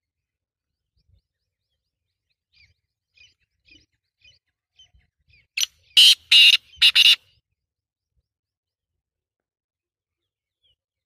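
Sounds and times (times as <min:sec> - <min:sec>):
francolin calling: 0:05.6 - 0:07.3.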